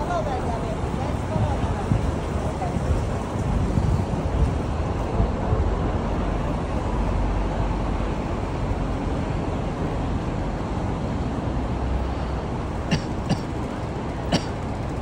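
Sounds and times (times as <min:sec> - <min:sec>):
wind rumble on microphone: 0:00.0 - 0:12.9
cars running nearby: 0:00.0 - 0:15.0.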